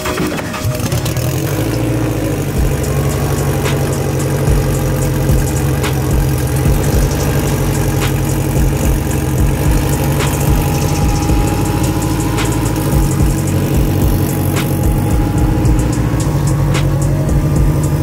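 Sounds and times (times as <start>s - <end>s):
car engine idling: 0.0s - 18.0s
sharp engine ticks: 0.0s - 18.0s.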